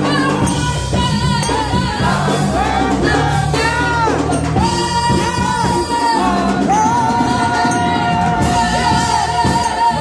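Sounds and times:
group vocals: 0:00.0 - 0:10.0
instrumental accompaniment: 0:00.0 - 0:10.0
low bass notes: 0:00.0 - 0:10.0
woman singing lead: 0:00.0 - 0:10.0.

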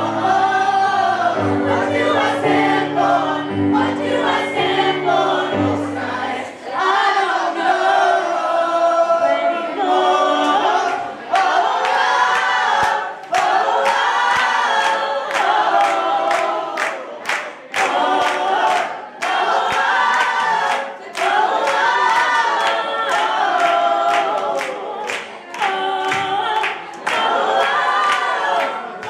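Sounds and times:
electric keyboard: 0:00.0 - 0:06.5.

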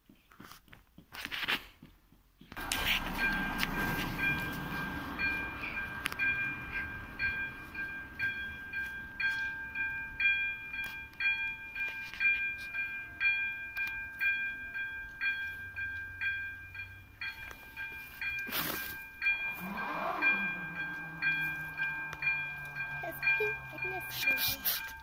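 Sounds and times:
car passing over crossing: 0:02.6 - 0:09.2, 0:16.1 - 0:25.0
level crossing bell ringing: 0:02.6 - 0:25.0.

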